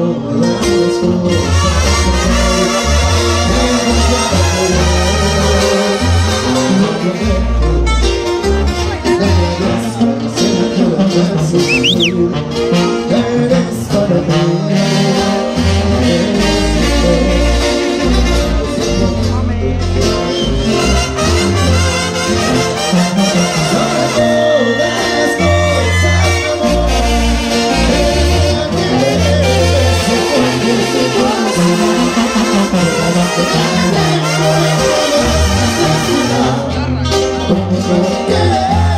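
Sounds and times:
brass band playing: 0.0 - 38.9
tuba bass line: 0.0 - 38.9
trumpets and trombones: 0.7 - 9.0, 14.1 - 38.9.

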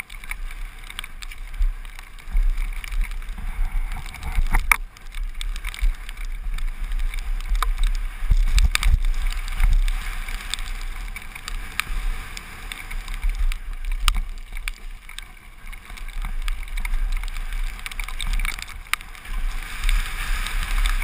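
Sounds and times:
bike knocks and clatters: 0.0 - 11.9
wind buffeting microphone: 0.0 - 21.0.

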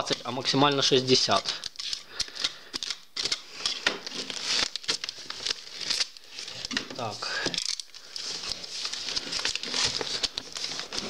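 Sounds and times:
plastic mailer crinkling: 0.0 - 11.0.

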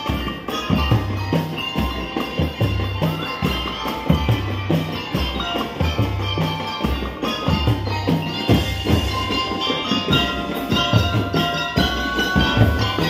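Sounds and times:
drums keeping a steady beat: 0.0 - 13.0
lyre melody: 0.0 - 13.0.

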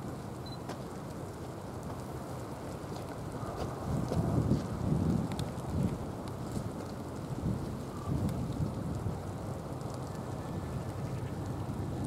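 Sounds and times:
wind buffeting microphone: 2.9 - 12.0.

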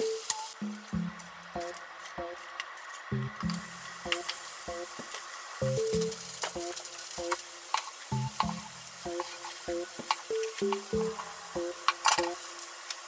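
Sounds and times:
food sizzling in oil: 0.0 - 13.0.

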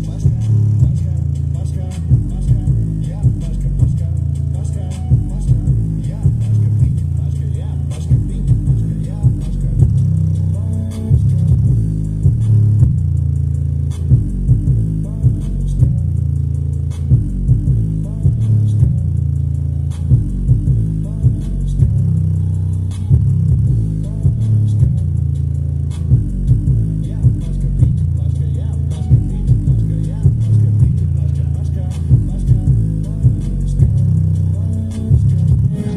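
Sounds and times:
rap music with deep bass: 0.0 - 35.9.

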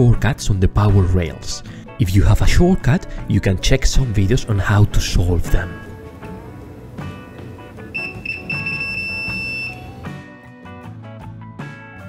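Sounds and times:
background music: 0.0 - 12.0
multimeter continuity buzzer beep: 7.8 - 10.2.

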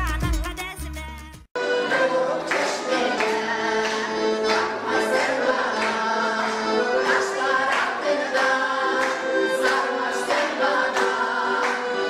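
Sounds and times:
women's choir singing in harmony: 1.6 - 12.0.

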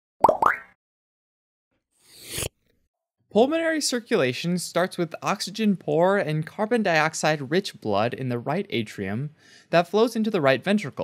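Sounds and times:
rising pitch pops: 0.2 - 0.8.

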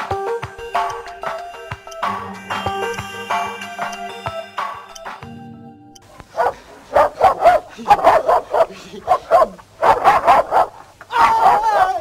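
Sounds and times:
dog barking: 6.3 - 11.6.

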